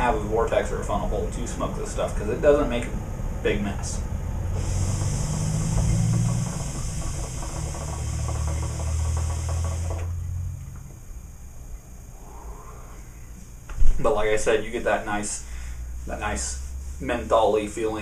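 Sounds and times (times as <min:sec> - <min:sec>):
hookah water bubbling: 0:04.5 - 0:10.6.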